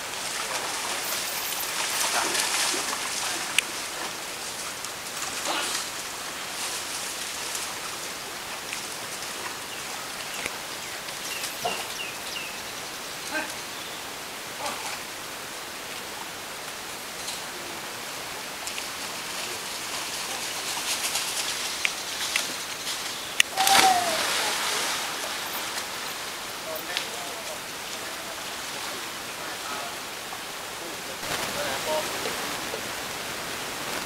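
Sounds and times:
hiss of running water: 0.0s - 34.0s.

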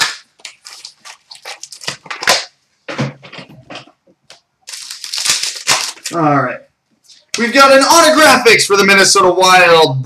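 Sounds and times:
crackling rustling of packs: 0.0s - 2.4s, 4.6s - 6.3s.

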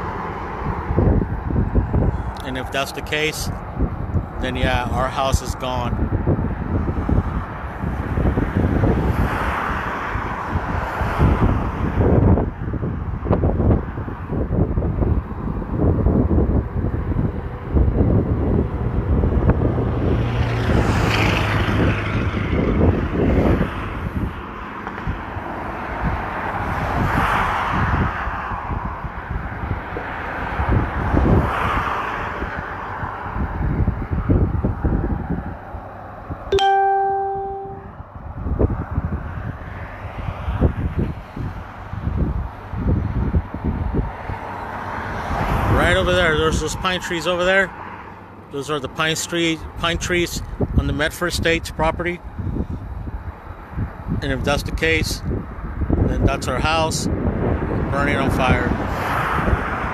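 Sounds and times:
wind buffeting microphone: 0.0s - 36.5s, 38.0s - 47.6s, 49.6s - 59.9s
ringing electronic chime: 36.6s - 37.9s.

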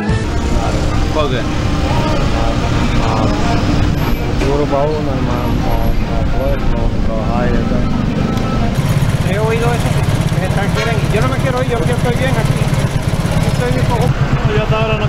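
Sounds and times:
street traffic rumble: 0.0s - 15.0s
man speaking: 0.2s - 15.0s.

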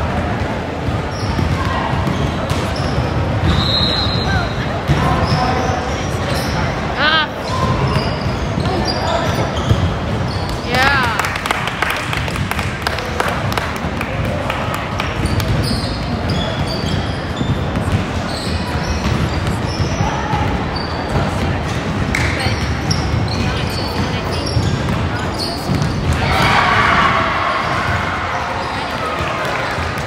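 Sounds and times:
sneakers squeaking: 0.0s - 11.2s, 14.7s - 30.0s
basketball bouncing on wooden floor: 25.7s - 26.2s.

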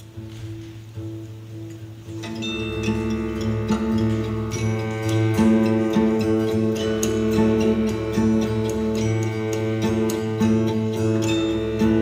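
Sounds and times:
acoustic guitar: 0.0s - 12.0s
sustained strings: 1.5s - 12.0s
bass guitar: 2.4s - 12.0s
high bell-like struck notes: 2.4s - 12.0s.

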